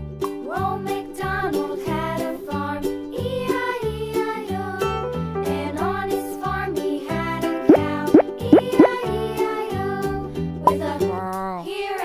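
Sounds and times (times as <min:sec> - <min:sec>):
children's background music: 0:00.3 - 0:12.0
rising cartoon bloop effects: 0:07.7 - 0:09.0.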